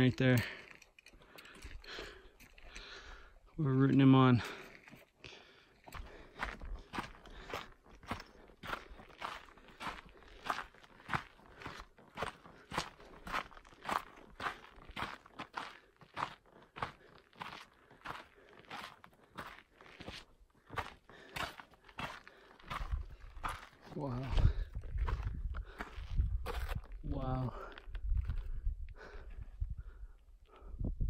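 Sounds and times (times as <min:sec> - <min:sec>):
footsteps crunching on gravel: 0:05.9 - 0:28.5.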